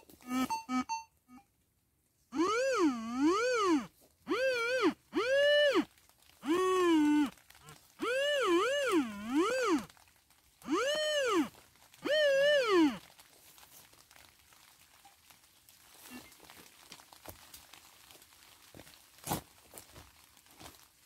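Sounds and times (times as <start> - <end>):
metal detector whistle tone: 2.3 - 7.3, 8.0 - 9.9, 10.7 - 13.0.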